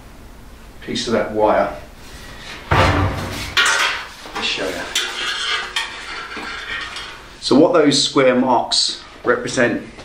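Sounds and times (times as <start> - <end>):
metal scraping and rattling: 2.6 - 7.4.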